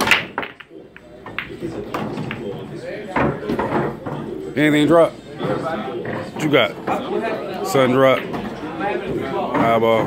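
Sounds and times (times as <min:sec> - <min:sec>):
cue ball cracking into pool balls: 0:00.0 - 0:03.9
pool balls clicking: 0:00.0 - 0:04.3, 0:06.2 - 0:10.0.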